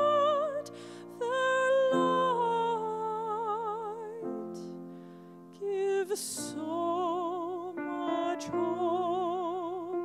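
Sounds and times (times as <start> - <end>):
grand piano chords: 0.0 - 10.0.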